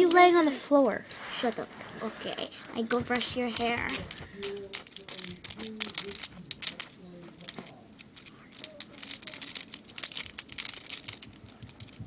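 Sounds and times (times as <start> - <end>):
synthetic hair crinkling: 0.0 - 12.0.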